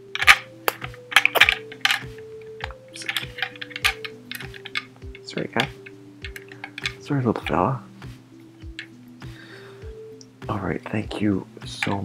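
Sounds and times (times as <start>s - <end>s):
quiet background music: 0.0s - 12.0s
plastic toy pieces clicking: 0.1s - 7.0s.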